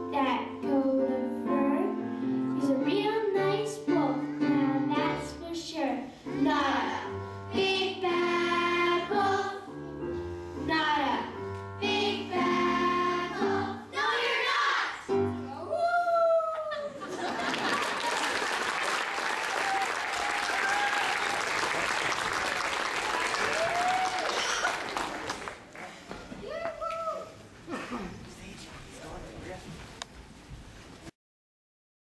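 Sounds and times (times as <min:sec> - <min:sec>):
piano accompaniment: 0:00.0 - 0:14.4, 0:15.1 - 0:15.7
children singing: 0:07.5 - 0:09.7, 0:11.8 - 0:15.1.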